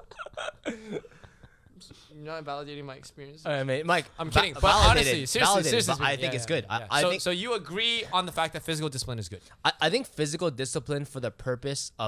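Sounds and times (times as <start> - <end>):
men laughing: 0.0 - 1.7, 4.6 - 6.2.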